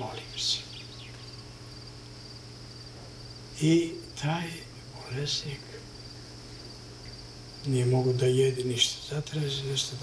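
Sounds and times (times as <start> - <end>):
man speaking: 0.0 - 0.7, 3.6 - 5.9, 7.7 - 10.0
insect chirping: 0.0 - 10.0.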